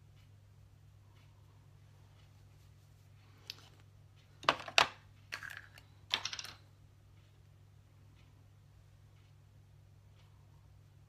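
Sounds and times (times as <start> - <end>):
cosmetics clicking and rattling: 4.4 - 6.7.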